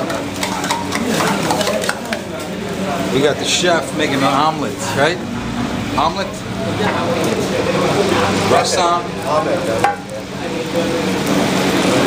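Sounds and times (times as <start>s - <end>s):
steel dishes clinking: 0.0s - 2.3s
faint indistinct voices: 0.0s - 12.0s.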